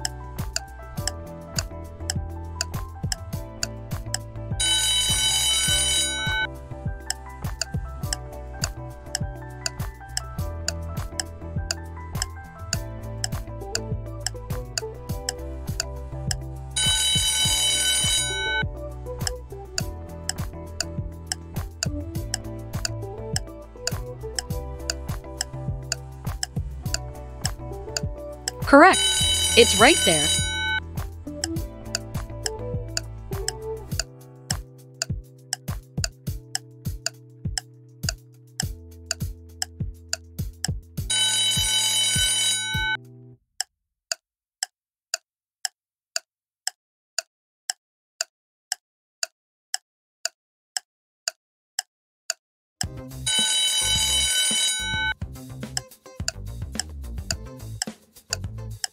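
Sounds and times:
background music with ticking beat: 0.0 - 44.2, 47.7 - 58.9
alarm clock ringing: 4.6 - 6.5, 16.8 - 18.6, 28.7 - 30.8, 41.1 - 43.0, 53.3 - 55.1.

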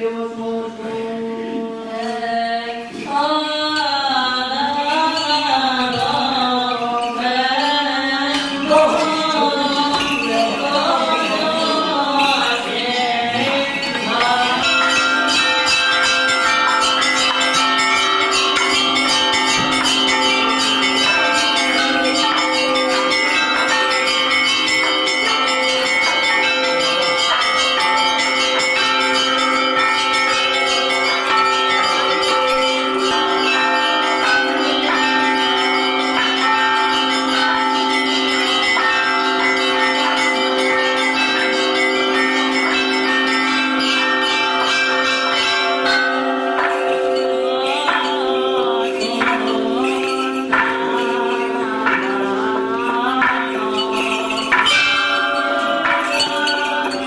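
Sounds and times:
church bells pealing: 0.0 - 57.0.

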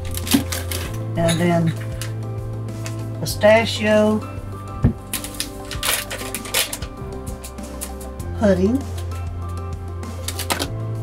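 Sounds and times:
plastic packet crinkling: 0.0 - 1.0, 5.1 - 7.0
instrumental background music: 0.0 - 11.0.

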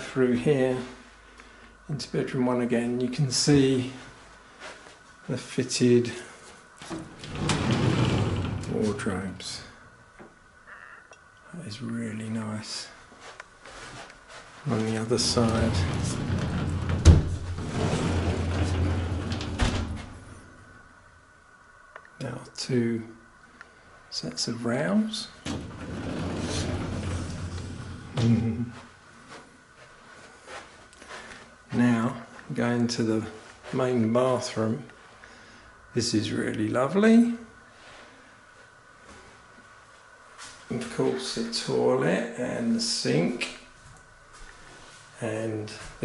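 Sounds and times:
sliding door click: 6.9 - 8.8, 15.2 - 20.3, 25.4 - 28.2
sliding door rolling rumble: 6.9 - 9.0, 15.1 - 20.4, 25.4 - 28.7.

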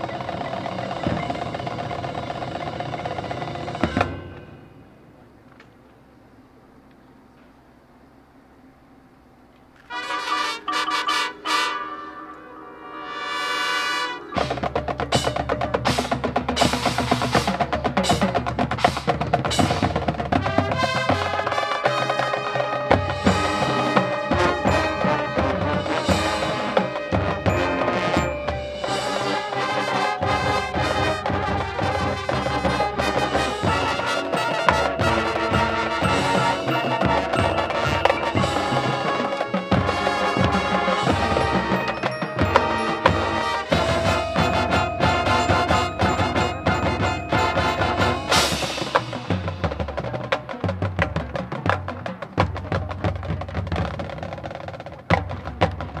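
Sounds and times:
drum and mallet percussion: 0.0 - 4.7, 10.6 - 12.3, 14.1 - 56.0
marching band playing: 0.0 - 5.1, 9.8 - 56.0
held brass chords: 9.8 - 14.8, 19.5 - 49.9.

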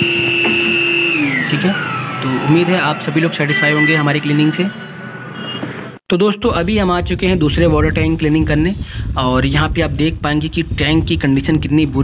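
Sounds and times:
vacuum cleaner motor whine: 0.0 - 3.8.

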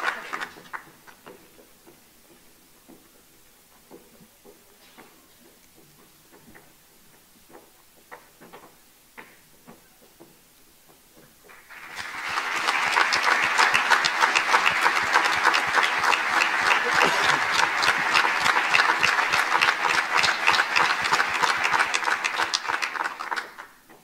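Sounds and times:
audience applauding: 0.0 - 1.2, 11.5 - 23.8.

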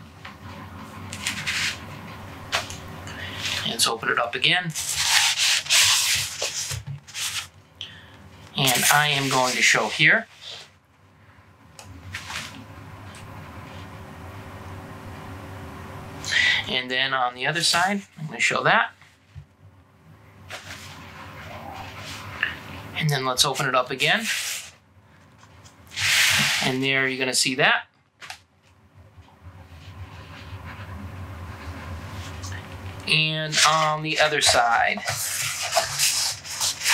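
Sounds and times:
low room hum: 0.0 - 36.9.

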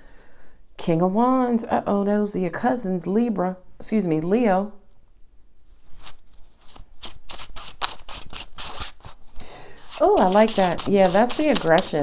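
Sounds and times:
cards being shuffled: 5.9 - 12.0.

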